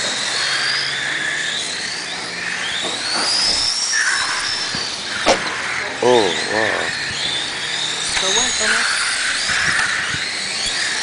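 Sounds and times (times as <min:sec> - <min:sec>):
rc car motors whining: 0:00.0 - 0:11.0
sharp knock: 0:05.2 - 0:05.5.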